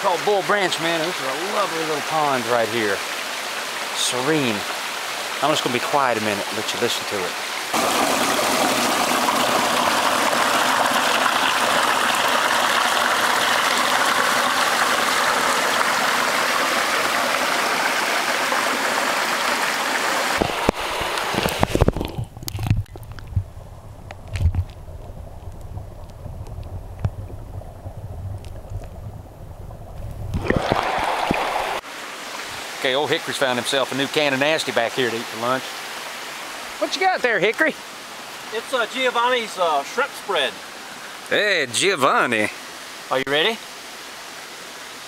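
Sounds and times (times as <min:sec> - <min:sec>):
stream rushing over rocks: 0:00.0 - 0:22.2, 0:29.9 - 0:45.0
muffled underwater rumble: 0:21.9 - 0:30.8.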